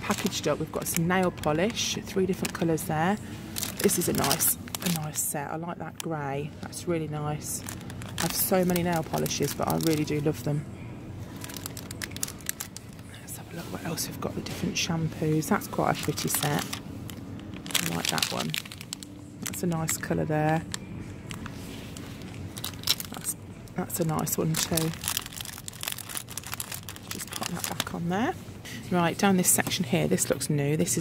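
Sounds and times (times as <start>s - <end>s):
plastic packaging crinkling: 0.0s - 5.4s, 7.4s - 10.5s, 11.3s - 14.6s, 15.4s - 28.1s
shop background: 0.0s - 31.0s.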